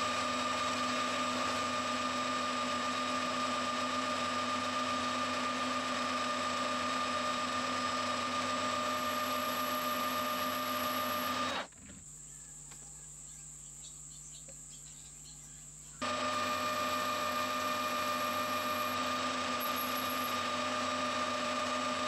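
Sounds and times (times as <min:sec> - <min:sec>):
metal lathe whining: 0:00.0 - 0:11.7, 0:16.0 - 0:22.0.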